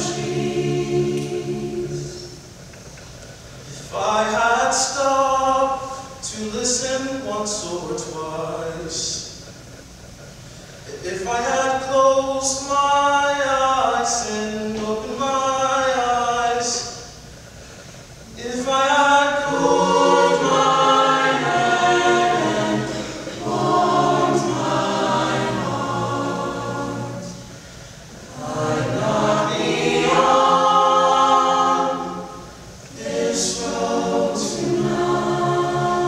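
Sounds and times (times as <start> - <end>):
choir singing unaccompanied: 0.0 - 2.6, 18.4 - 36.0
singers breathing: 27.4 - 28.3.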